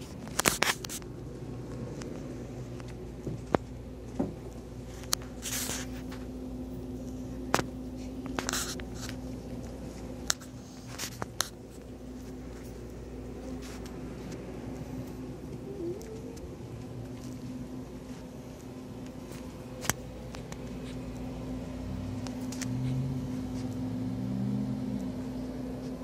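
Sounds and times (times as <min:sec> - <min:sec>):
low electrical hum: 0:00.0 - 0:26.0.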